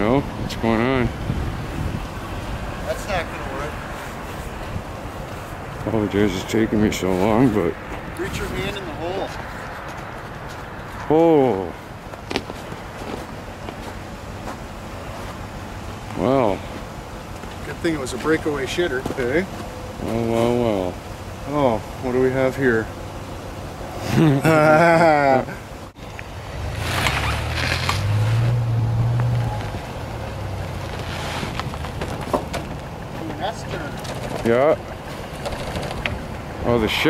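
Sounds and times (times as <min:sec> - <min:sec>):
wind rushing on microphone: 0:00.0 - 0:05.9
car engine idling: 0:00.0 - 0:37.0
person laughing: 0:24.0 - 0:25.6.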